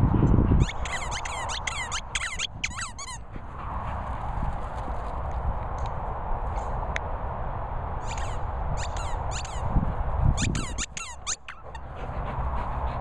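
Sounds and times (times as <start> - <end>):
rubber squeaky toy squeaking: 0.6 - 3.2, 10.4 - 11.8.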